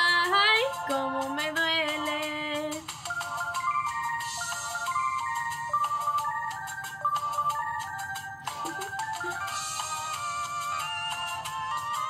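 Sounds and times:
steady percussion beat: 0.1s - 12.0s
bright synth melody: 2.9s - 12.0s.

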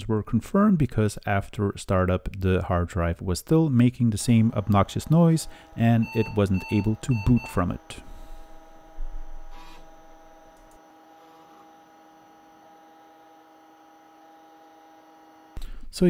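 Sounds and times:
hard drive humming: 4.0s - 16.0s.

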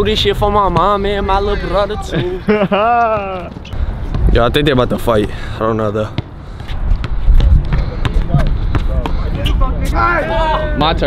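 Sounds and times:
wind buffeting microphone: 3.5s - 11.0s.

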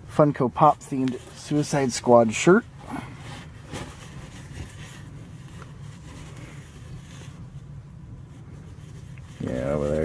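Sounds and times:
steady low hum: 0.0s - 10.0s
fabric rustling: 0.8s - 10.0s.

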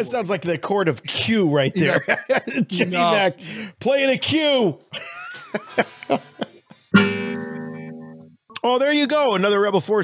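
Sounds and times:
guitar chord strummed: 7.0s - 8.3s.

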